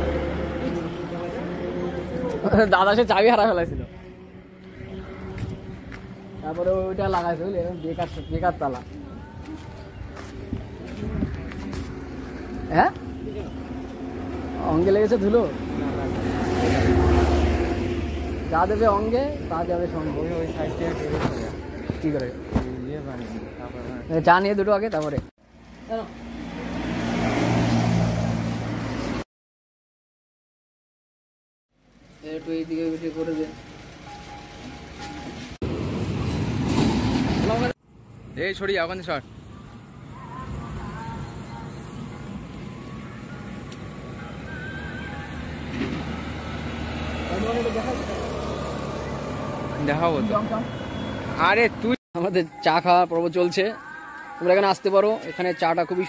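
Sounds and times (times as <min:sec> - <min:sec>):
vehicle engine humming: 0:00.0 - 0:29.2, 0:31.8 - 0:52.0
motor scooter engine humming: 0:03.7 - 0:06.9.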